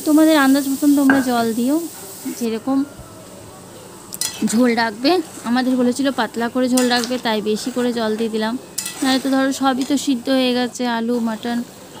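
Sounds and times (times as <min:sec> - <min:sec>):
metal spatula scraping a pan: 0:04.2 - 0:10.1.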